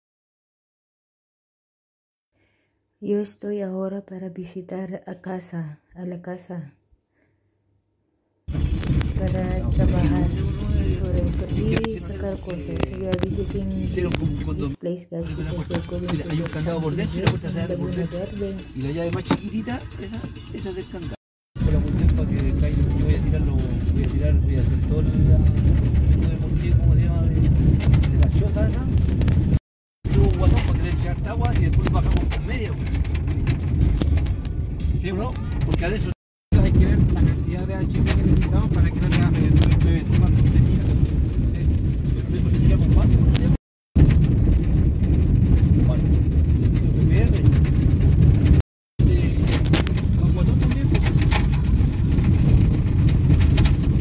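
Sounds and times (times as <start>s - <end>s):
car driving on dirt road: 21.6s - 54.0s.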